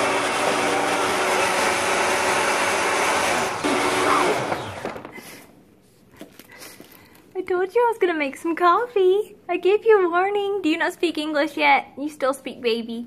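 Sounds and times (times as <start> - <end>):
blender running: 0.0 - 5.4.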